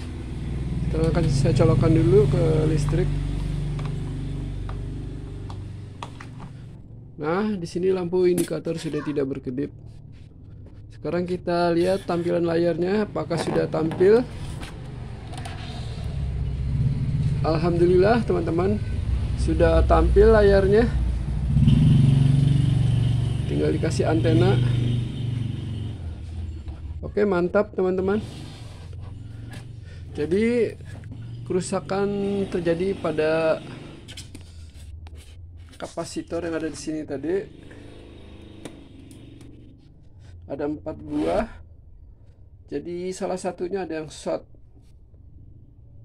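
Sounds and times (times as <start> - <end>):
low engine-like hum: 0.0 - 7.2, 12.7 - 27.2, 27.9 - 42.6.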